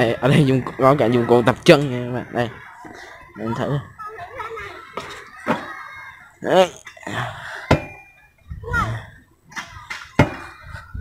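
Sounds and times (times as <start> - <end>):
sharp metal knocks: 7.7 - 8.1.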